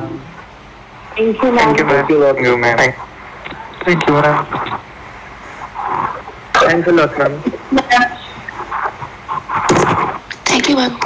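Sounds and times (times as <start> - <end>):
garbled voices over video call: 1.4 - 5.0, 5.6 - 11.0
microphone noise: 2.8 - 10.6.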